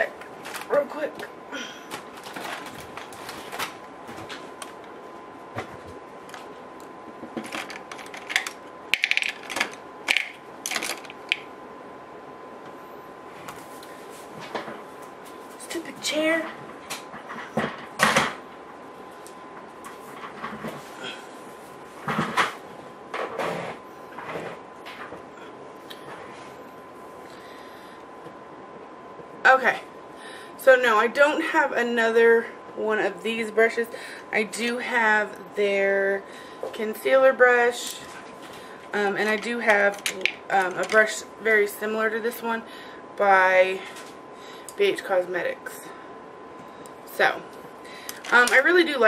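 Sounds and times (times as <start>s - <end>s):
small objects clicking and clattering: 7.4s - 11.4s.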